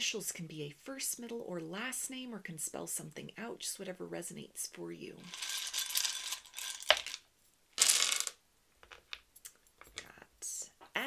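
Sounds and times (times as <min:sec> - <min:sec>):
wooden tiles clattering: 0:05.3 - 0:07.2, 0:07.8 - 0:10.1.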